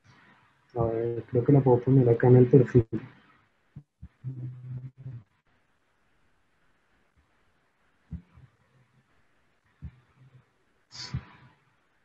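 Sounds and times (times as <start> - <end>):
man humming: 4.2 - 5.2.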